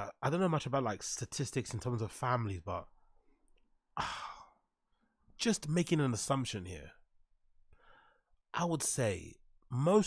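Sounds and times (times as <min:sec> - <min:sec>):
man sighing: 0:04.0 - 0:04.6.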